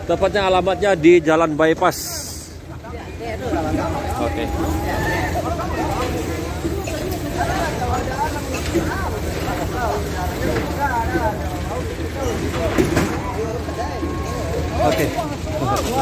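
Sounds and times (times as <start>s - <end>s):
fire engine rumbling: 0.0s - 16.0s
voices chattering: 0.0s - 16.0s.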